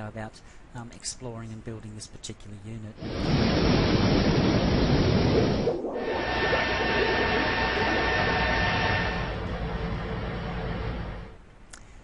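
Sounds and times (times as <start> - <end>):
faint steady whining tones: 2.9 - 12.0
loud rushing noise with low rumble: 3.0 - 11.4.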